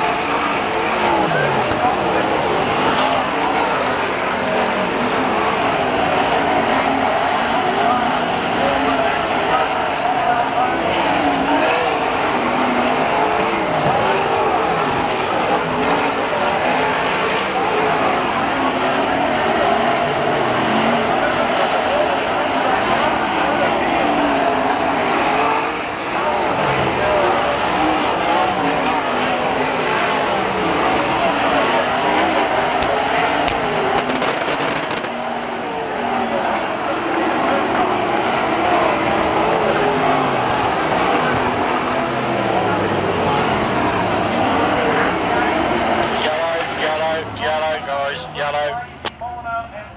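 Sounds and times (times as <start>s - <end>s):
race car engines revving: 0.0s - 49.9s.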